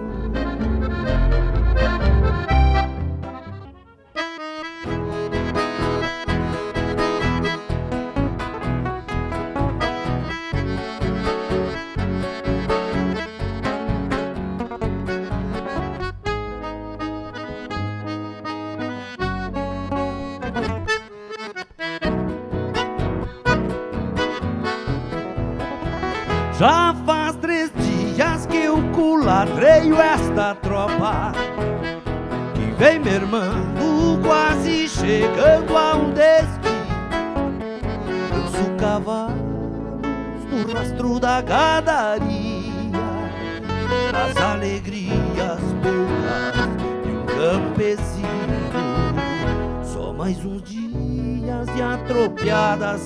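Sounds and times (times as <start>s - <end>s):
song's last chord: 0.0s - 6.4s
fingerpicked classical guitar: 0.0s - 53.0s
person singing: 26.5s - 31.6s, 32.5s - 36.9s, 38.2s - 53.0s.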